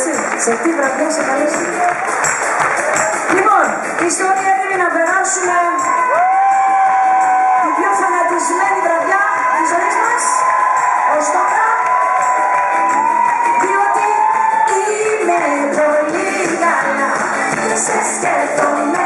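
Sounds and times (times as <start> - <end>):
crowd cheering: 0.0 - 4.3, 5.3 - 19.0
live pop band: 0.1 - 19.0
woman singing into microphone: 13.3 - 19.0.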